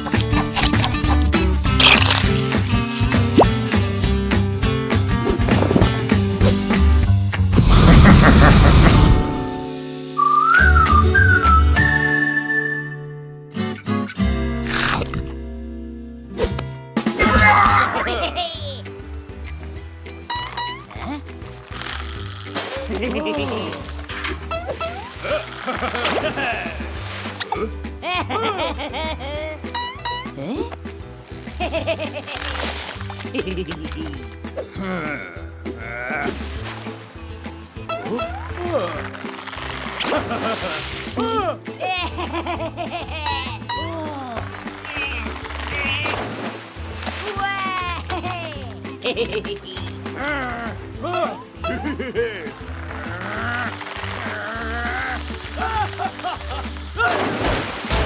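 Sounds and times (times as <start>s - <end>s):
cartoon music with low bass: 0.0s - 58.0s
person whistling a tune: 10.2s - 13.2s
wavering bleat-like cries: 52.9s - 56.0s.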